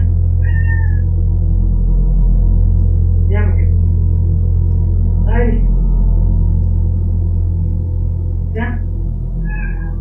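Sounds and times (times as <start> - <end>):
steady low drone: 0.0 - 10.0
cat meowing: 0.4 - 1.1, 9.4 - 10.0.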